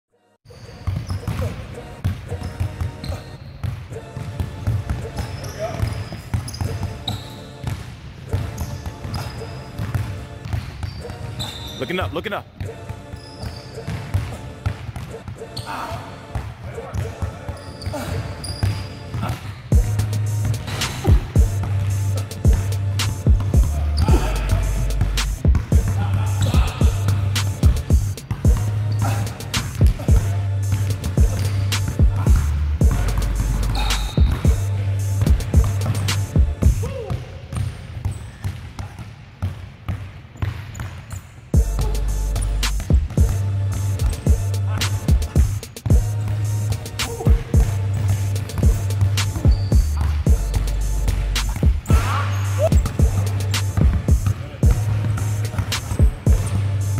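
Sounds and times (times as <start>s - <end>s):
basketballs bouncing: 0.5s - 56.9s
heavy bass music: 19.7s - 36.8s, 41.6s - 56.9s.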